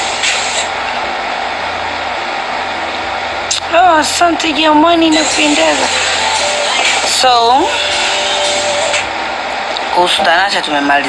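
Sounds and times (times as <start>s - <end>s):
loud steady background hiss: 0.0s - 11.0s.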